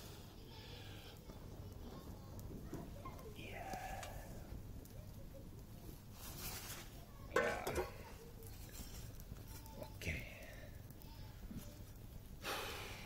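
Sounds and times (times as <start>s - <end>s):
hissing flare: 0.0s - 9.5s
tinder crackling: 0.0s - 13.0s.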